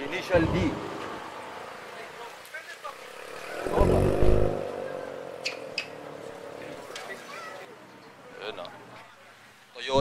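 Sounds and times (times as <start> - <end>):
engines droning: 2.8 - 7.2
car engine revving: 3.0 - 6.7.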